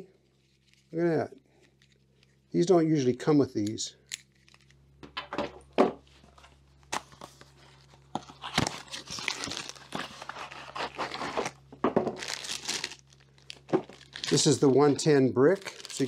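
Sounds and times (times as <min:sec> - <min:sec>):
plastic packaging crinkling: 0:07.0 - 0:16.0.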